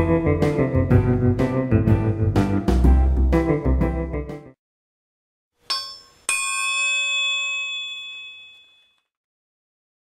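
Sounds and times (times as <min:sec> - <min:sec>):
bell-like metallic dings: 0:05.7 - 0:09.1.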